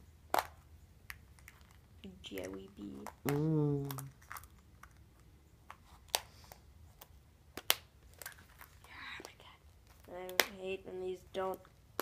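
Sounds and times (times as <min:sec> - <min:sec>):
person speaking: 0:02.0 - 0:04.2.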